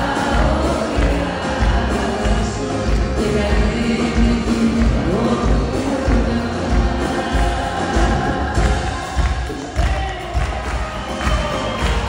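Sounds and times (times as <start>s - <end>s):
bass drum beat: 0.0s - 12.0s
live band music: 0.0s - 12.0s
person singing: 0.0s - 12.0s.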